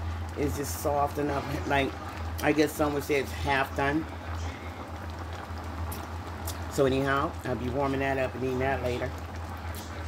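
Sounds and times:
broth bubbling in a pot: 0.0 - 10.0.

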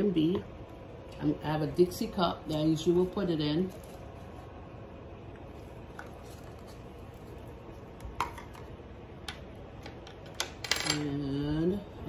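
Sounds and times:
low background hum: 0.0 - 12.0.

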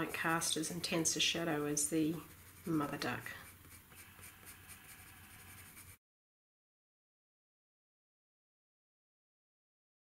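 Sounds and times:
pencil scratching across paper: 0.0 - 6.0.

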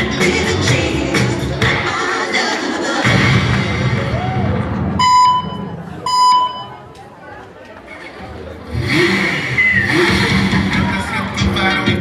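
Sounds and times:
bass-heavy dance music: 0.0 - 5.9, 8.8 - 12.0
electronic buzzer beeps: 5.0 - 6.8.

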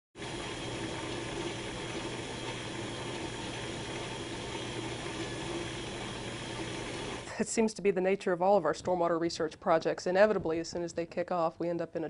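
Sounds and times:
running water rushing: 0.2 - 7.3.

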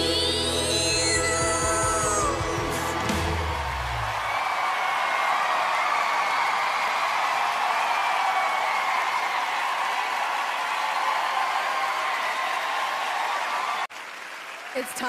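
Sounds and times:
audience applauding: 1.3 - 15.0.

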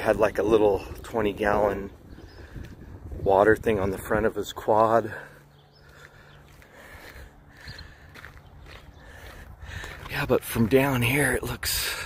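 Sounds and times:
footsteps on gravel: 3.8 - 12.0.

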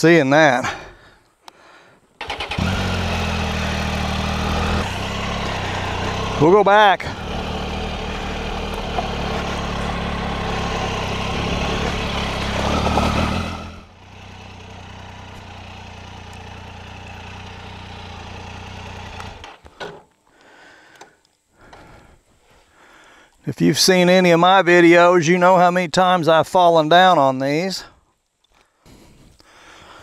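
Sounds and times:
motorcycle engine running: 2.2 - 19.6.

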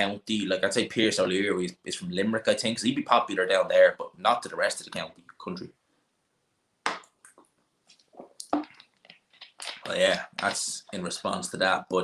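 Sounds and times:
man talking: 0.0 - 5.8, 9.6 - 12.0.

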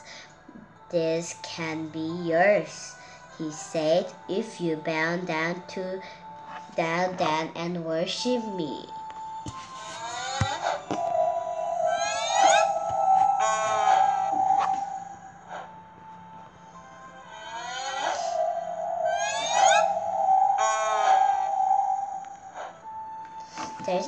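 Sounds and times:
background music: 0.0 - 24.0
shimmering magical sweeps: 9.6 - 24.0.

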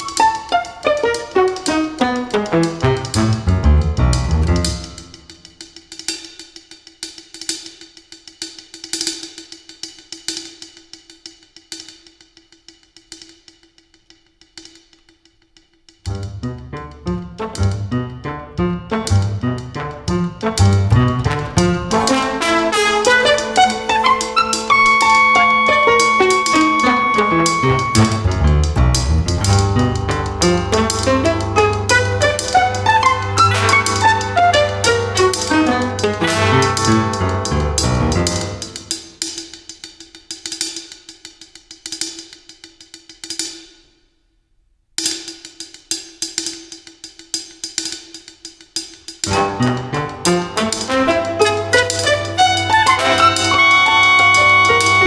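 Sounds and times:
jazz ensemble playing: 0.0 - 5.5, 16.1 - 39.2, 49.2 - 55.0.

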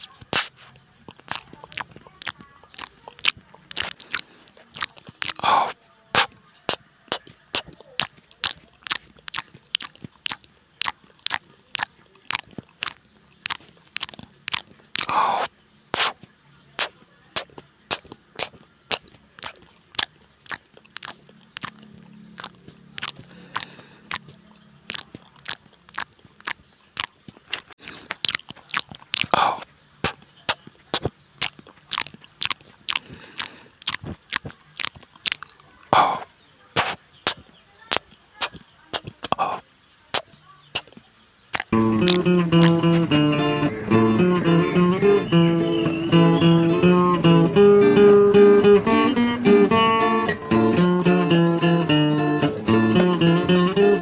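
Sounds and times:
breathy sounds: 0.0 - 16.2, 16.8 - 30.2, 31.0 - 37.4, 41.6 - 44.9
crunchy chewing: 0.0 - 54.0.

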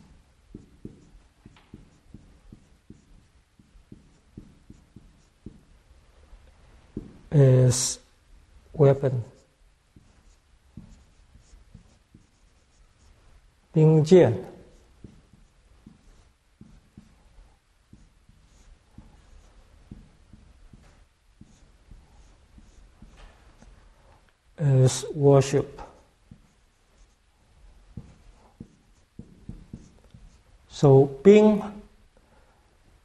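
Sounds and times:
marker writing on whiteboard: 0.0 - 5.9, 6.9 - 7.4, 8.8 - 23.9, 25.0 - 31.2
person speaking: 7.0 - 8.1, 8.8 - 17.2, 24.6 - 27.1, 28.0 - 32.0.

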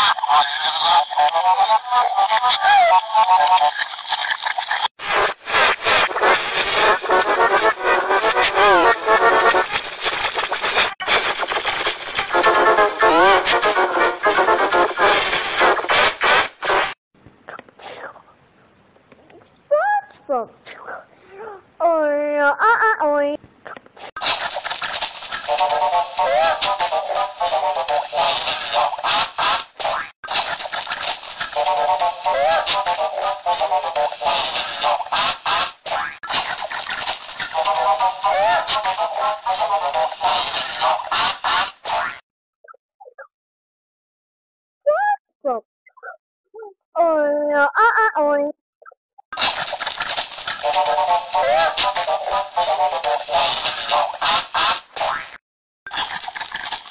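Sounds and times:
faint garbled voice fragments: 0.0 - 4.9, 24.2 - 29.2, 48.8 - 54.2
distorted cartoon voices and sound: 0.0 - 18.4, 19.1 - 43.3, 44.8 - 56.9.

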